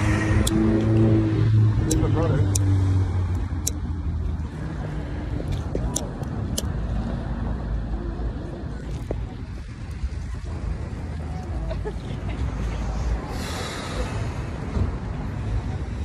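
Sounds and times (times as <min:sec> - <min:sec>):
outdoor background noise: 0:00.0 - 0:16.0
vehicle engine humming: 0:00.0 - 0:16.0.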